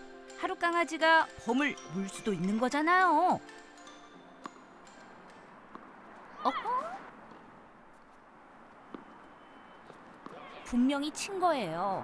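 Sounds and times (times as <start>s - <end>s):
tennis ball knock: 4.4s - 4.6s, 5.7s - 6.0s.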